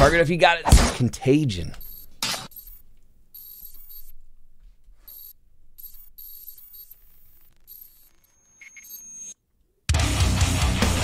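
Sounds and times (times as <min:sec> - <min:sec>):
hissy digital static glitches: 0:06.2 - 0:09.4.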